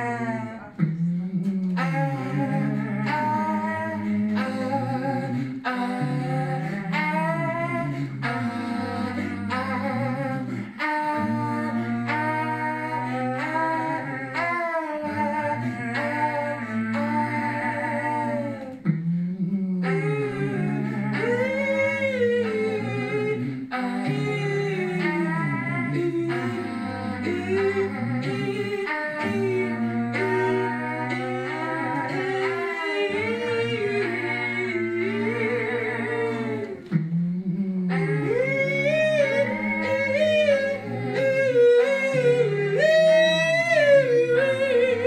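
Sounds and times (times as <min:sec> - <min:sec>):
looped vocal parts: 0:00.0 - 0:45.0
man singing held notes: 0:00.0 - 0:45.0
sung melody and harmonies: 0:00.0 - 0:45.0.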